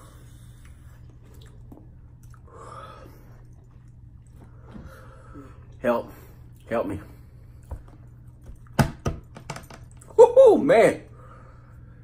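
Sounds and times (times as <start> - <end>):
low steady hum: 0.0 - 12.0
wet chewing mouth sounds: 0.5 - 2.5.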